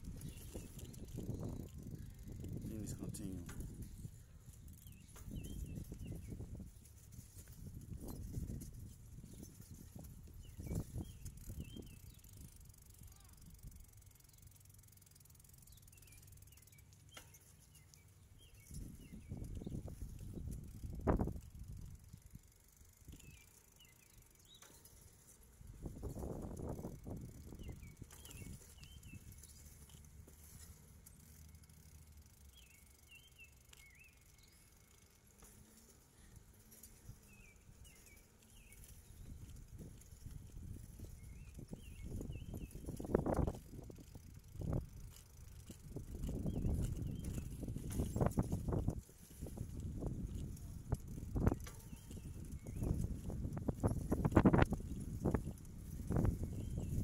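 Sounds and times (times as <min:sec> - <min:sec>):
wind buffeting microphone: 0:00.0 - 0:13.9, 0:18.4 - 0:22.5, 0:25.6 - 0:29.6, 0:37.0 - 0:57.0
small birds chirping faintly: 0:00.0 - 0:57.0.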